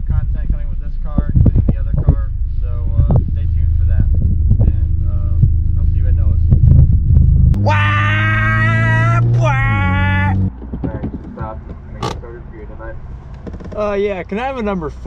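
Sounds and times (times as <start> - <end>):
car engine rumble from inside: 0.0 - 15.0.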